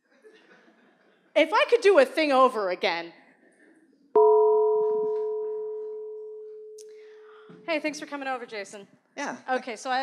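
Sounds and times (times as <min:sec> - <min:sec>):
struck bell-like chime: 0:04.2 - 0:07.4.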